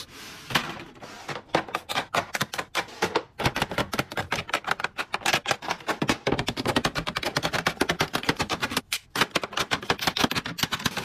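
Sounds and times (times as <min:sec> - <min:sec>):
makeup cases clicking on plastic: 0:01.6 - 0:11.0.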